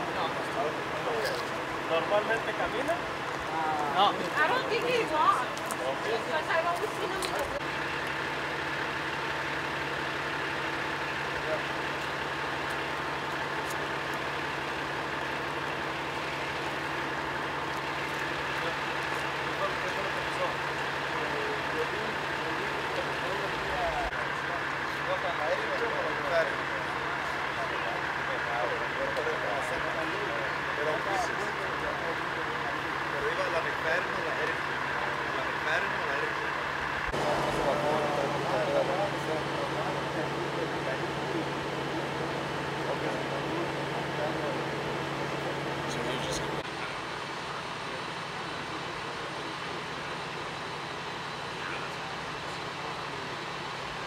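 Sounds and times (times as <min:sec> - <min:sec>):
faint voices talking: 0:00.0 - 0:54.0
fire engine idling: 0:00.0 - 0:54.0.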